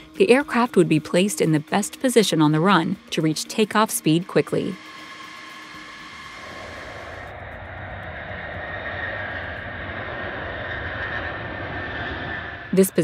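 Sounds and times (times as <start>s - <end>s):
jet engines roaring: 2.6s - 13.0s.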